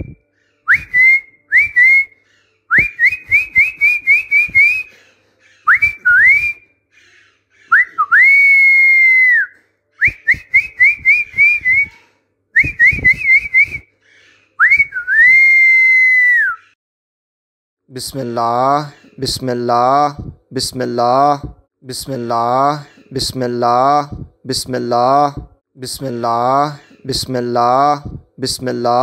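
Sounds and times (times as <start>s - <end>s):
person whistling: 0.0s - 4.9s, 5.7s - 6.6s, 7.7s - 12.0s, 12.6s - 13.9s, 14.6s - 16.8s.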